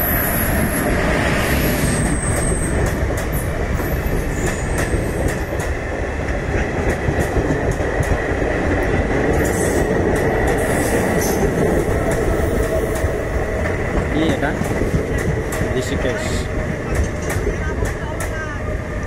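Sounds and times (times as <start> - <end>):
train wheels rumbling on rails: 0.0 - 19.0.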